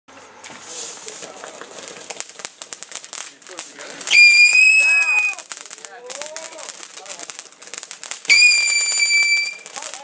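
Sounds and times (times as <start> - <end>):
fireworks crackling and popping: 0.1 - 10.0
people talking: 0.5 - 2.0, 3.2 - 7.8, 9.4 - 10.0.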